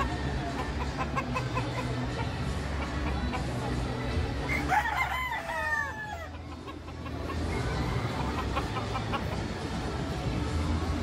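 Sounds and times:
rooster crowing: 4.5s - 6.3s.

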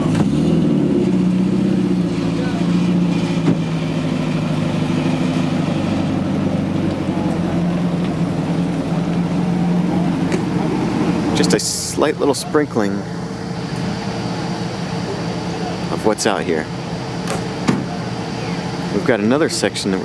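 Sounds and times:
car engine running at low revs: 0.0s - 20.0s.

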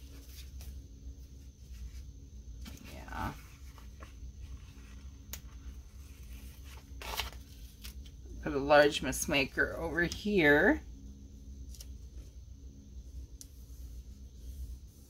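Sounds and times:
paper pages rustling: 0.0s - 8.2s
low steady hum: 0.0s - 15.0s.

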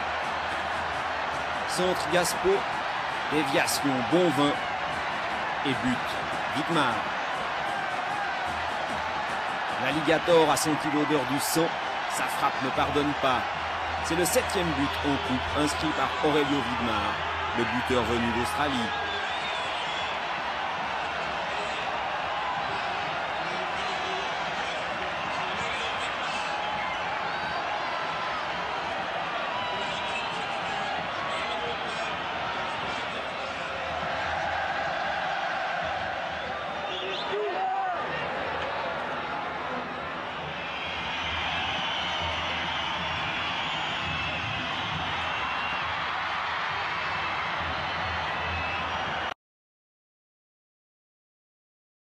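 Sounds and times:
stadium crowd cheering: 0.0s - 49.4s.

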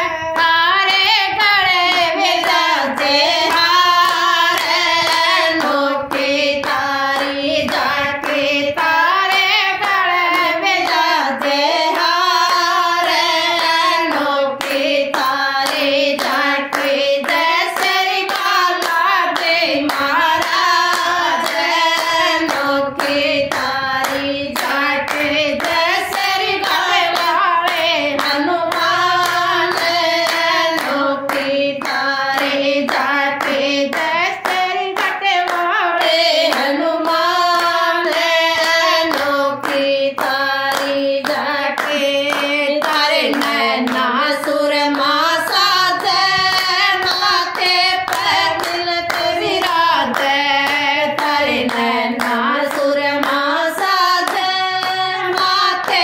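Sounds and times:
women singing together: 0.0s - 56.0s
hand claps: 0.3s - 56.0s.

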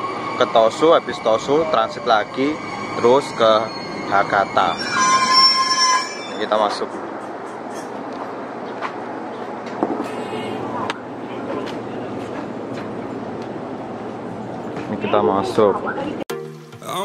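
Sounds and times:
electric train humming: 0.0s - 9.7s
footsteps: 6.7s - 10.2s.

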